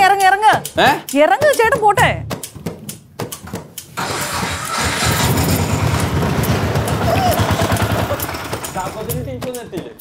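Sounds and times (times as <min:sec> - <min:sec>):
small engine starting and puttering: 0:04.0 - 0:09.2.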